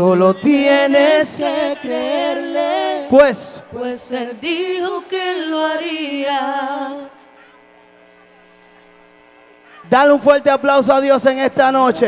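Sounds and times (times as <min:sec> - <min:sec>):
sound system electrical hum: 0:00.0 - 0:12.0.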